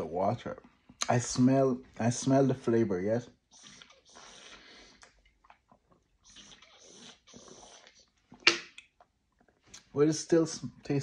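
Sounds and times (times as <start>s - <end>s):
sucking through bottle mouthpiece: 3.5s - 5.2s.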